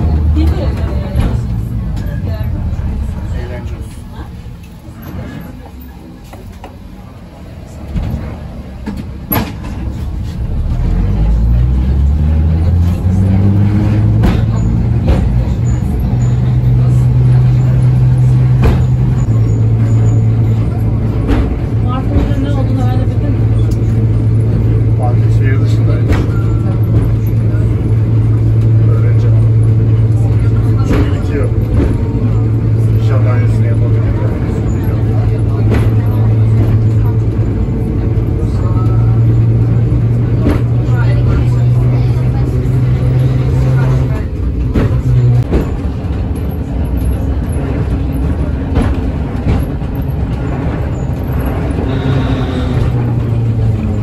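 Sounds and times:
background voices talking: 0.0 - 54.0
tram low hum: 0.0 - 54.0.

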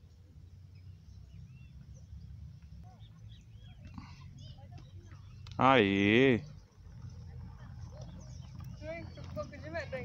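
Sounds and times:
faint birds chirping: 0.0 - 10.0
low steady background rumble: 0.0 - 10.0.

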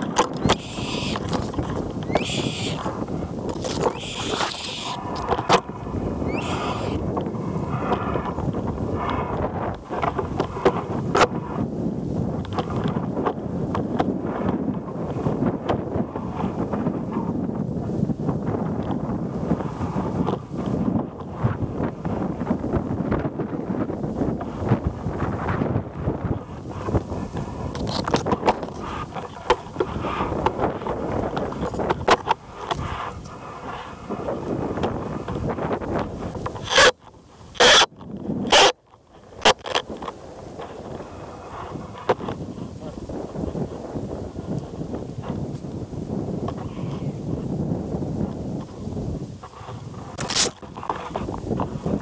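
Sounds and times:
leaves and branches brushing camera: 0.0 - 11.6, 24.5 - 38.7, 49.0 - 52.0
wind rumbling on microphone: 0.0 - 52.0.

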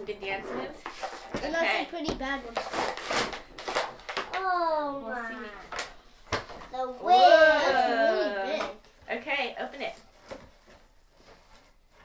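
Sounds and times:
plastic and cardboard rustling: 0.2 - 4.5, 8.7 - 12.0.

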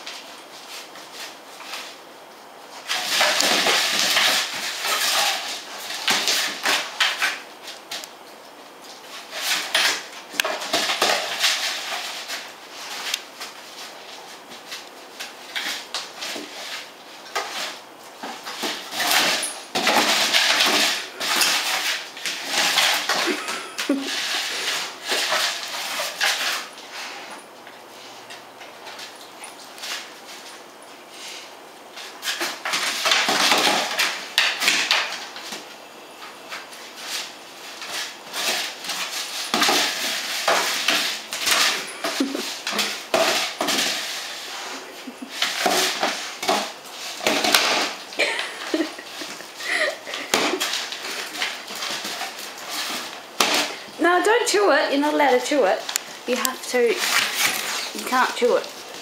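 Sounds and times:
dog feet scrabbling: 36.5 - 59.0.

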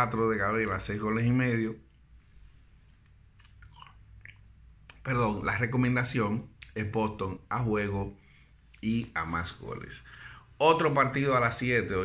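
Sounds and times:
low room hum: 0.0 - 12.0
mouth clicks and lip smacks: 3.0 - 5.1, 6.5 - 6.8.

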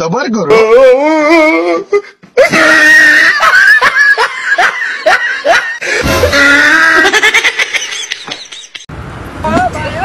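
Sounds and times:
person laughing: 2.4 - 8.9.

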